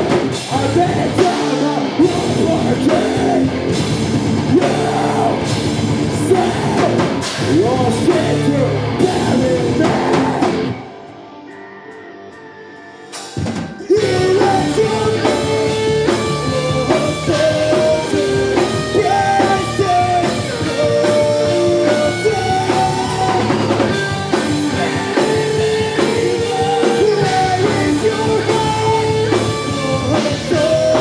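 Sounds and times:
heavy metal band playing live: 0:00.0 - 0:31.0
shouted vocals: 0:04.4 - 0:10.9, 0:13.9 - 0:31.0.

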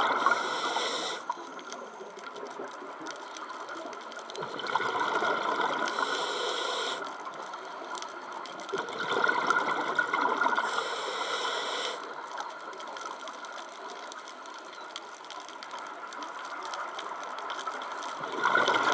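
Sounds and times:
hiss: 0:00.0 - 0:01.3, 0:05.9 - 0:07.1, 0:10.6 - 0:12.1
scuba regulator breathing underwater: 0:00.0 - 0:01.4, 0:05.8 - 0:07.2, 0:10.4 - 0:12.1
bubbling and gurgling: 0:00.0 - 0:06.2, 0:07.0 - 0:11.2, 0:15.8 - 0:18.9
exhaled bubbles surging: 0:04.4 - 0:06.1, 0:08.8 - 0:10.6, 0:18.2 - 0:18.9.

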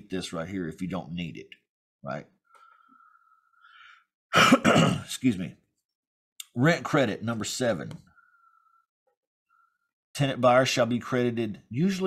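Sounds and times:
man clearing his throat: 0:04.3 - 0:05.1.

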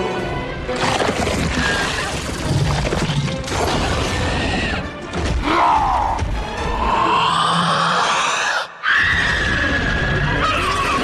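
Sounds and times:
monster roar: 0:06.8 - 0:11.0.

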